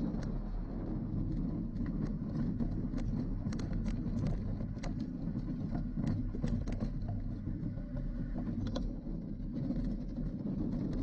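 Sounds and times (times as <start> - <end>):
bicycle tyres rumbling on gravel: 0.0 - 11.0
clicks and rattles: 1.7 - 7.4.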